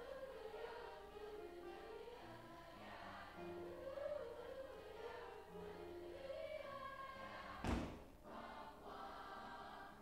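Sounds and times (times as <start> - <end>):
choir singing: 0.0 - 10.0
loud thump: 7.6 - 8.1.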